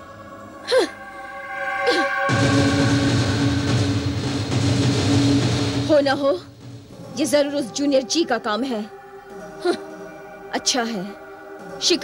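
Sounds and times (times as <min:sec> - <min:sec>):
loud rumbling drone: 0:00.0 - 0:06.1.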